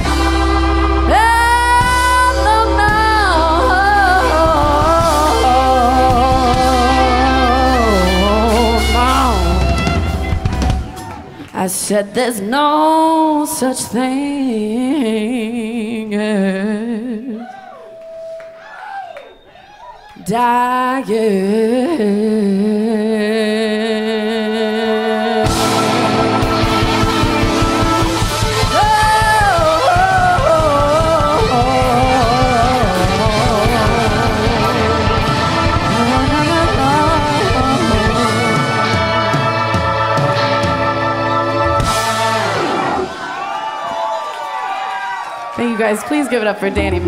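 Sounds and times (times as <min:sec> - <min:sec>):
live rock band playing: 0:00.0 - 0:11.5, 0:25.4 - 0:43.6
woman singing: 0:01.0 - 0:10.0, 0:11.5 - 0:17.6, 0:20.2 - 0:26.6, 0:28.6 - 0:41.1.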